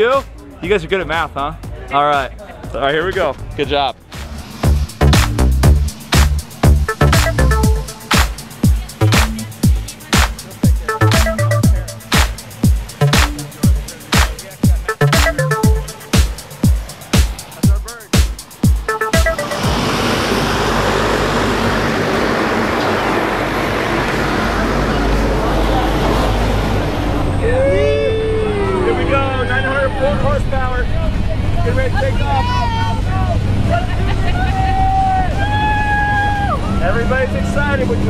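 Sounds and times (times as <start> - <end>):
aircraft engine drone in cabin: 19.4 - 28.8
loud rushing wind noise: 19.5 - 27.6.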